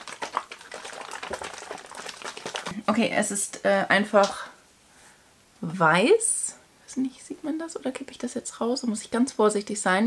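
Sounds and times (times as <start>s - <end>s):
liquid sloshing in carton: 0.0s - 2.8s.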